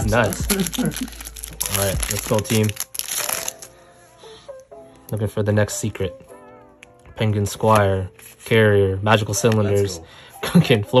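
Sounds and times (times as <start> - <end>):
foil wrapper crinkling: 0.0 - 3.7
faint background music: 0.0 - 11.0.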